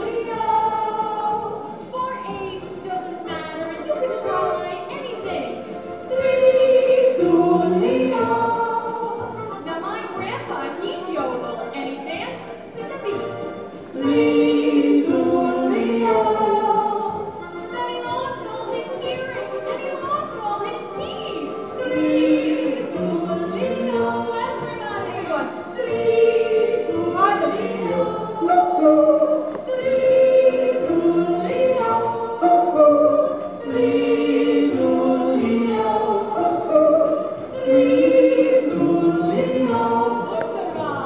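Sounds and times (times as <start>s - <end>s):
group of voices yodeling: 27.6s - 40.3s.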